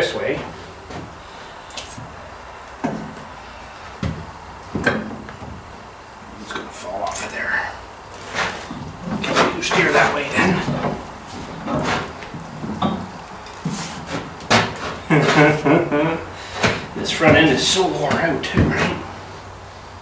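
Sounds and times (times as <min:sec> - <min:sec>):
clunks and knocks from steel axle: 0:02.8 - 0:03.3, 0:04.0 - 0:05.7, 0:08.2 - 0:15.5, 0:16.5 - 0:19.1
man's voice: 0:09.2 - 0:10.8, 0:17.0 - 0:19.1.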